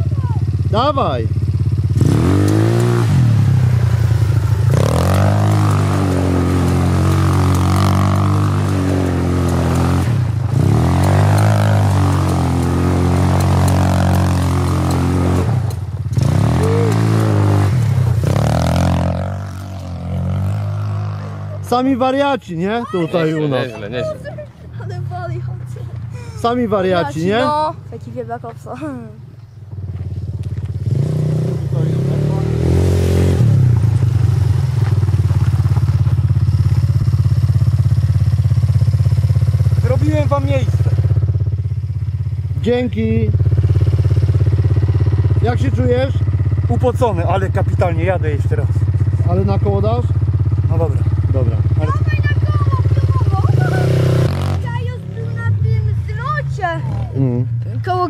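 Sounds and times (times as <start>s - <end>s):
quad bike engine revving: 0.0s - 29.1s, 29.7s - 58.0s
men talking: 21.0s - 24.9s, 25.7s - 27.7s, 31.6s - 32.8s, 39.8s - 41.0s, 42.6s - 43.4s, 45.4s - 52.0s, 57.2s - 57.6s.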